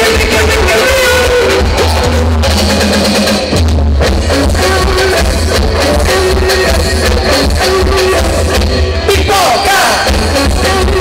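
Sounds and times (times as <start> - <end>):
drums: 0.0 - 11.0
electric guitars playing melody: 0.0 - 11.0
heavy bass: 0.0 - 11.0.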